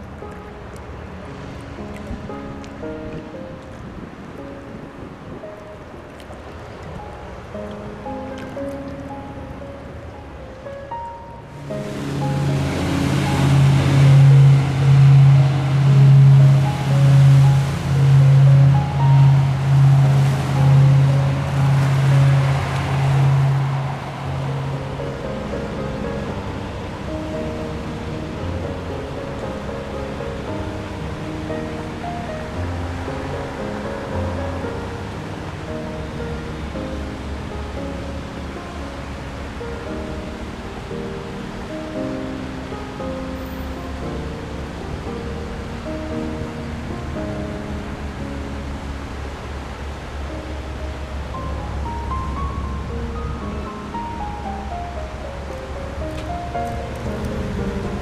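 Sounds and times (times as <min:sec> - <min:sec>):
rushing wave-like wash: 0:00.0 - 0:58.0
low swelling bass note: 0:11.5 - 0:28.6.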